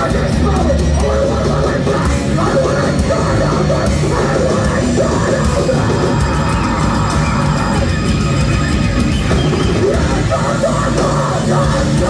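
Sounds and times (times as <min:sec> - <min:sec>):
distorted electric guitar: 0:00.0 - 0:12.0
drums: 0:00.0 - 0:12.0.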